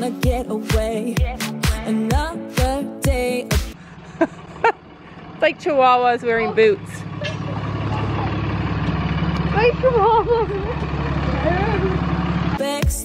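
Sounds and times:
pop music: 0.0 - 3.8, 12.5 - 13.0
truck engine idling: 3.7 - 13.0
faint voices: 5.5 - 8.6.

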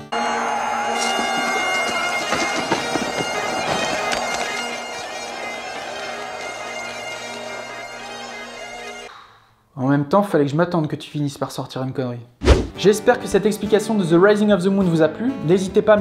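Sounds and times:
bagpipes playing a tune: 0.0 - 9.1.

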